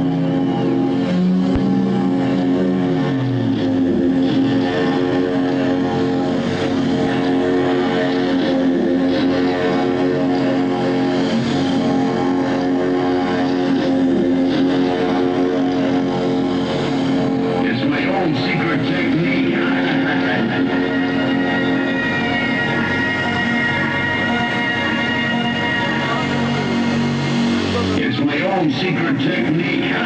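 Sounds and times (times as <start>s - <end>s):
electronic rock droning chord: 0.0s - 30.0s.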